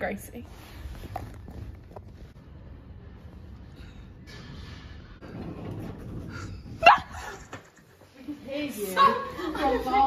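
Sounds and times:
rustling of people moving: 0.0 - 3.8.

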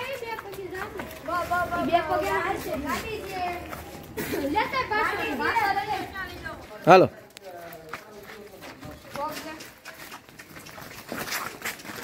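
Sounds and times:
boys shouting and calling out: 0.0 - 7.2.

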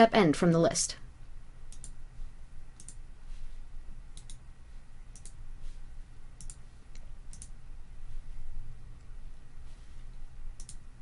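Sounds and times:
low steady hum: 0.0 - 11.0
computer mouse clicking: 1.7 - 2.0, 2.8 - 3.0, 4.1 - 4.4, 5.1 - 5.4, 6.4 - 7.6, 10.6 - 10.8.

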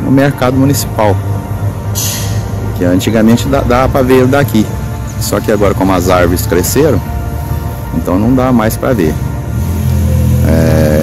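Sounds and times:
motor vehicle engine droning: 0.0 - 11.0.

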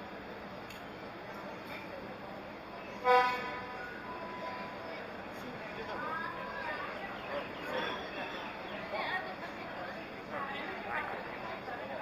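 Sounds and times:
horn toot: 3.0 - 3.7.

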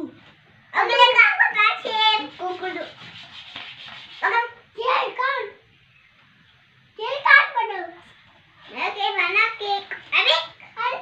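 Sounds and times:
hands rubbing cloth bedsheet: 1.9 - 4.5.

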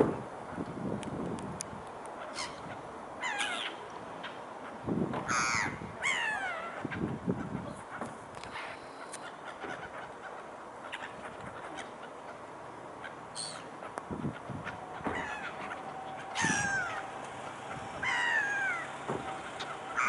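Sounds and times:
gulls calling: 2.1 - 20.0.

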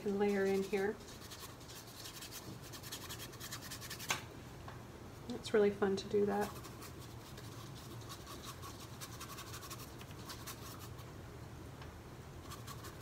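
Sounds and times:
paintbrush scratching on canvas: 0.0 - 4.1, 6.4 - 11.0, 12.4 - 13.0.

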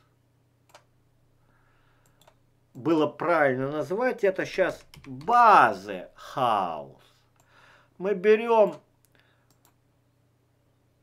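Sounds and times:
faint computer mouse clicks: 2.0 - 2.8, 9.0 - 9.8.

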